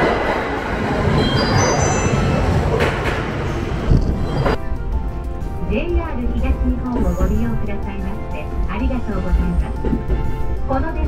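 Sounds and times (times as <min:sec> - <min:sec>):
background music: 0:00.0 - 0:11.0
train rumble and rail noise: 0:00.0 - 0:11.0.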